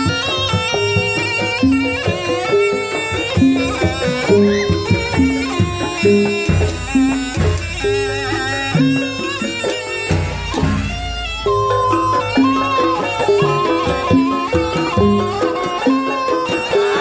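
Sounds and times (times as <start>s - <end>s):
drums and gongs: 0.0s - 17.0s
shrill reed wind instrument: 0.0s - 17.0s
heavy bass drum strokes: 4.8s - 9.4s, 10.1s - 12.0s.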